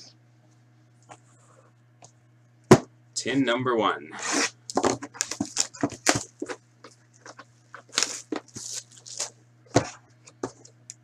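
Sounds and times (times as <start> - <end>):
cardboard rustles and scrapes: 7.2 - 10.7.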